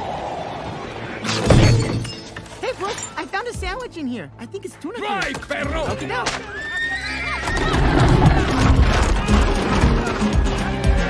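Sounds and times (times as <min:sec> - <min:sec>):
glass shards and debris falling: 0:01.3 - 0:03.4
window smashing: 0:07.6 - 0:10.3.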